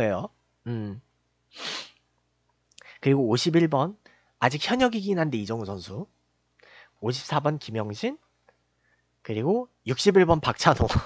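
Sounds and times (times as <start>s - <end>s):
man sharp breath: 1.6s - 2.0s, 6.6s - 7.0s.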